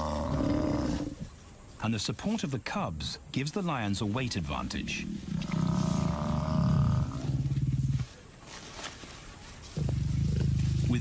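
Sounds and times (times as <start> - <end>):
lions growling: 0.0 - 1.3, 4.4 - 8.1, 9.8 - 11.0.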